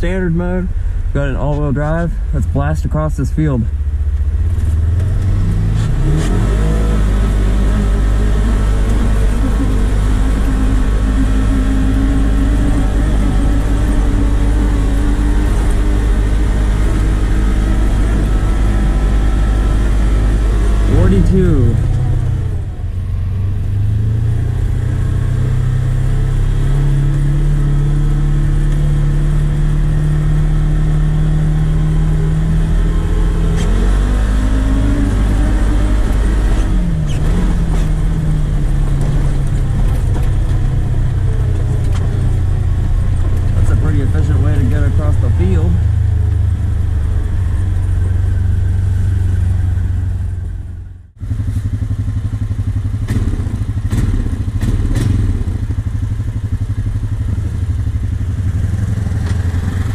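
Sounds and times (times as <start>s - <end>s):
atv engine running hard: 0.0s - 59.9s.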